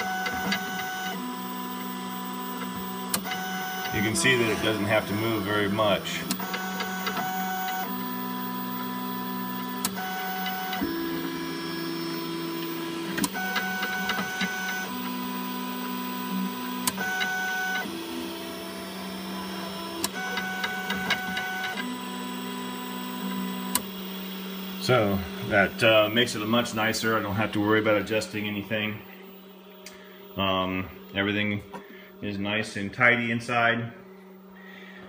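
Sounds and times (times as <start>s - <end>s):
steady hum: 0.0s - 10.0s, 18.5s - 35.0s
stepper motors whining: 0.0s - 35.0s.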